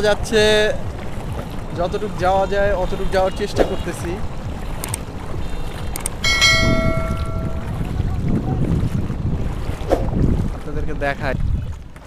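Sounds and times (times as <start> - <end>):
wind rumble on microphone: 0.0 - 12.0
bright bell-like chime: 6.2 - 7.7.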